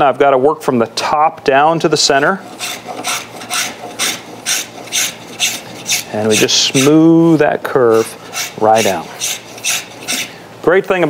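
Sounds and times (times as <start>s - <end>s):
spokeshave cutting wood: 2.4s - 10.4s.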